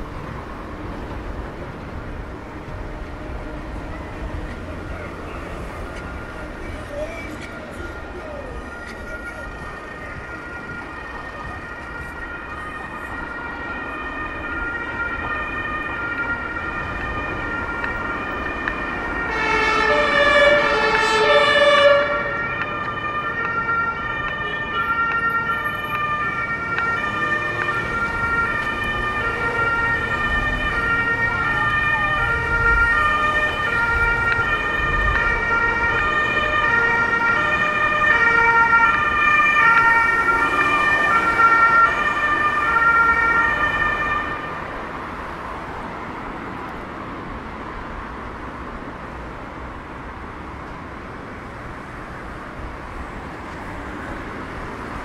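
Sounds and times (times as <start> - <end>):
two-tone emergency siren: 2.0 - 46.0.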